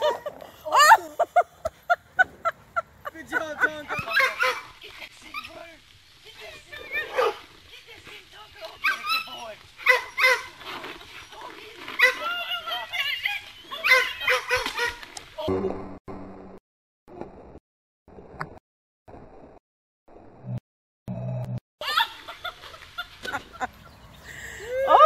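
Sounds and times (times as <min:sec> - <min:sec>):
dogs barking and yipping: 0:03.9 - 0:05.5, 0:06.7 - 0:07.5, 0:08.7 - 0:15.2.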